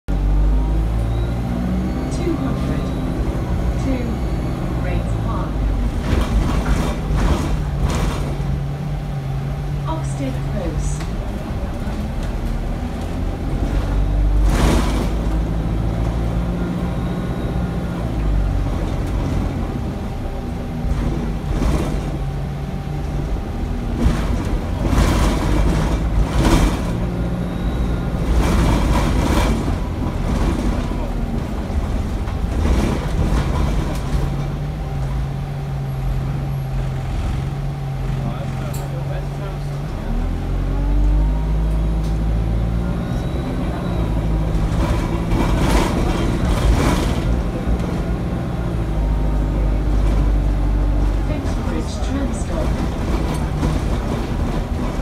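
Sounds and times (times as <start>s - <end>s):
bus diesel engine running: 0.0s - 55.0s
road and cabin noise: 0.1s - 55.0s
bus body rattling: 0.2s - 55.0s.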